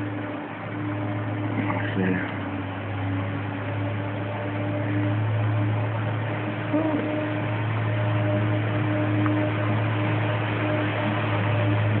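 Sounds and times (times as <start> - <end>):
constant hiss: 0.0 - 12.0
low hum: 0.0 - 12.0.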